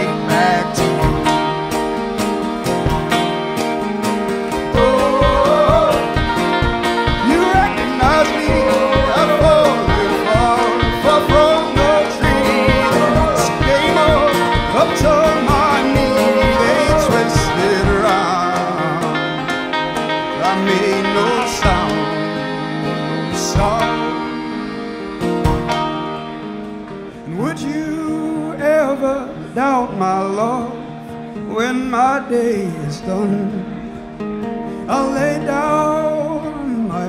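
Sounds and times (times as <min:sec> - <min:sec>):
folk band playing: 0:00.0 - 0:37.0
wordless singing: 0:04.4 - 0:19.6, 0:20.2 - 0:26.6.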